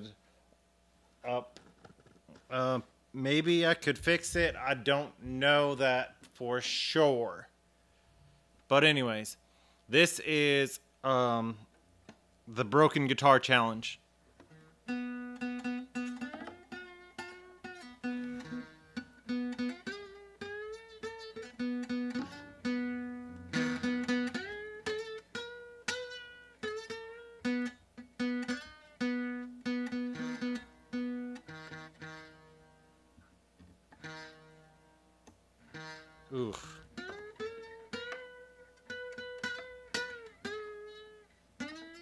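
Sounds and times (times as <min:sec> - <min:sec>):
acoustic guitar picked melody: 0:14.4 - 0:33.2, 0:33.9 - 0:42.0.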